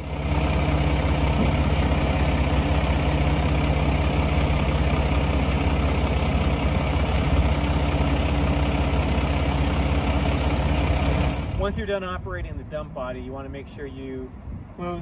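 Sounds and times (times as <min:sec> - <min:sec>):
diesel engine running: 0:00.0 - 0:12.7.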